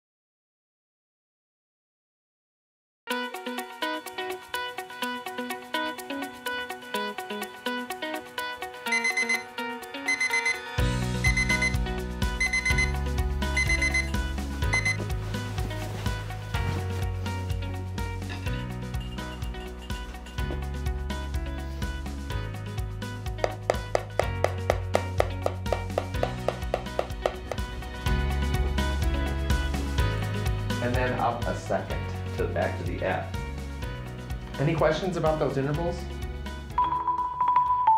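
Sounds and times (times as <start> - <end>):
background music: 3.1 - 37.9
digital alarm clock beeping: 8.8 - 11.8, 12.4 - 15.0, 36.8 - 37.9.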